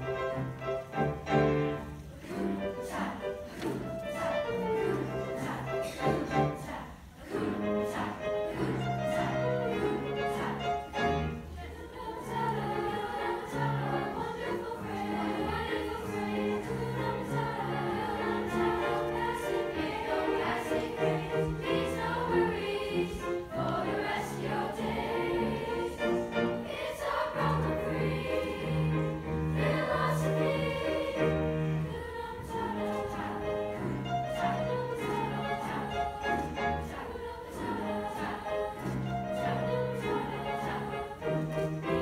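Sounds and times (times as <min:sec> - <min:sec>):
children's choir singing: 0:00.0 - 0:42.0.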